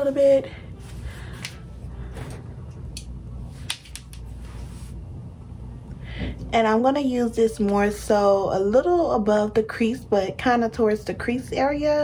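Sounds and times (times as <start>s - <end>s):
low hum: 0.0s - 11.8s.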